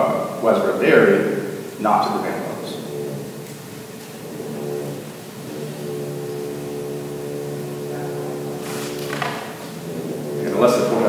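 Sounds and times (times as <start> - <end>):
steady hum of held tones: 0.0 - 11.0.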